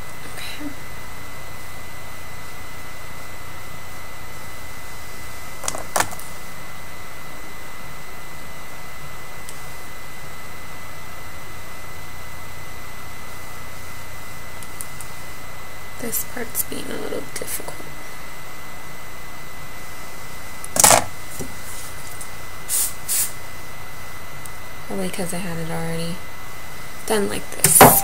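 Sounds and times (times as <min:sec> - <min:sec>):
background hiss and hum: 0:00.0 - 0:28.0.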